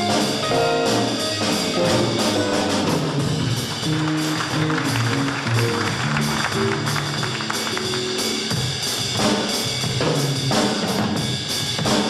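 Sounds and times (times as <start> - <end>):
electric guitars: 0.0 - 9.1
electric bass line: 0.0 - 9.2
drum kit: 0.0 - 12.0.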